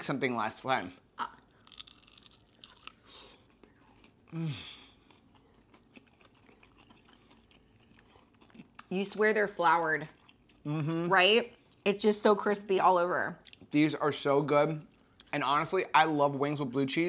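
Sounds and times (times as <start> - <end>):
crunching and chewing: 1.4 - 8.9, 10.0 - 10.7
person saying mm: 4.3 - 4.8, 10.7 - 11.1.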